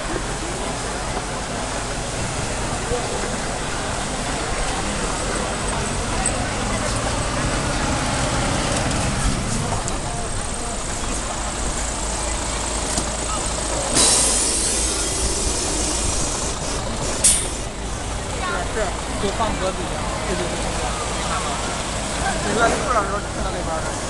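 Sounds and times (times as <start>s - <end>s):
city bus running: 0.0s - 24.0s
air brakes hissing: 13.3s - 18.0s.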